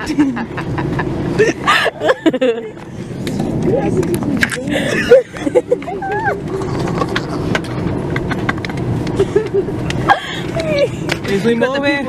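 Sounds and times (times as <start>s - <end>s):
airliner cabin drone: 0.0s - 11.6s.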